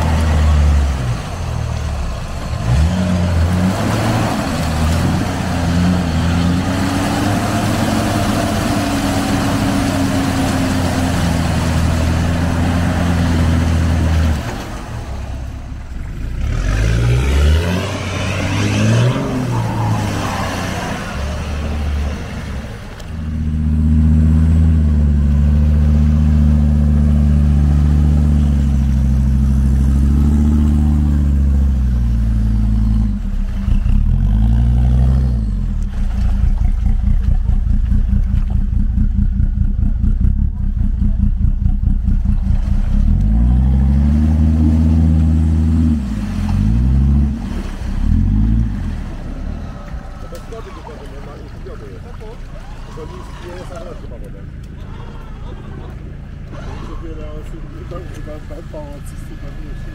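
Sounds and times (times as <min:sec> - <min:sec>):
off-roader engine revving hard: 0:00.0 - 0:51.5, 0:54.7 - 0:59.9.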